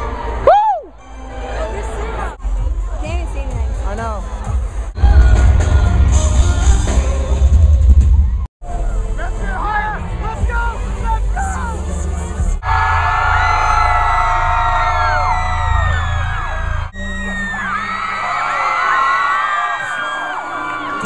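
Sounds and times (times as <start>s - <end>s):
concert crowd screaming and cheering: 0.0s - 21.0s
live band music with singing: 2.6s - 9.1s.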